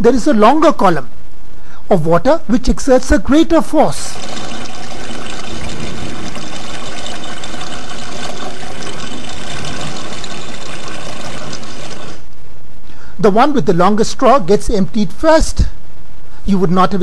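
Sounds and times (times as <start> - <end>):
water draining from bottles: 4.1 - 12.2.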